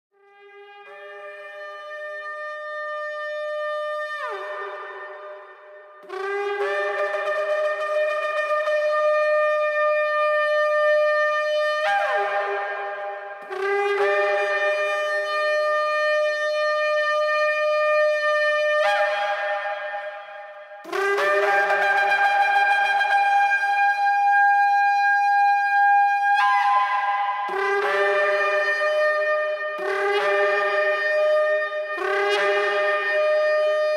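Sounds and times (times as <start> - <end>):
shofar long held note: 0.3 - 33.9.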